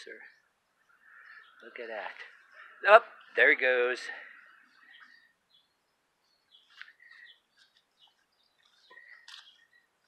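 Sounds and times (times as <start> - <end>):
faint bird chirps: 0.0 - 3.3, 4.2 - 10.0.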